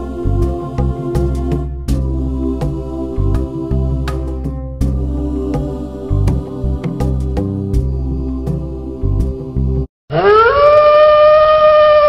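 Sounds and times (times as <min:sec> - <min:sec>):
wolf howling: 0:10.1 - 0:12.0.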